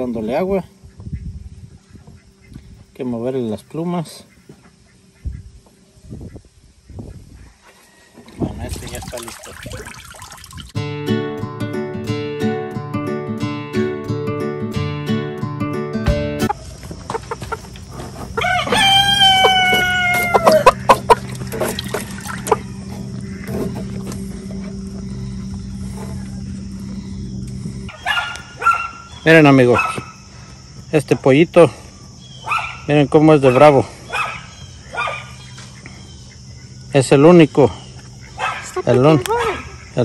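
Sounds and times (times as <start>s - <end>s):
rooster crowing: 7.6s - 8.4s, 18.3s - 23.5s
water splashing in a tub: 8.2s - 10.8s, 20.9s - 22.6s
music with a steady beat: 10.8s - 16.5s.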